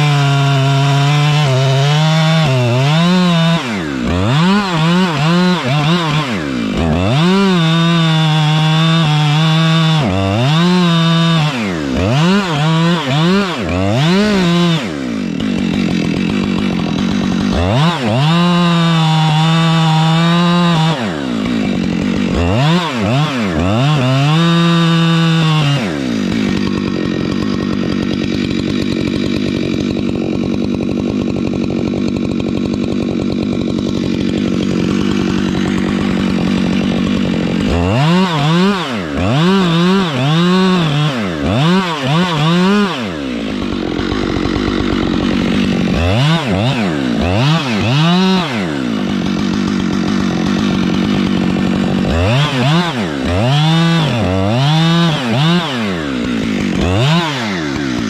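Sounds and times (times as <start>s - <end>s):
chainsaw cutting wood: 0.0s - 58.0s.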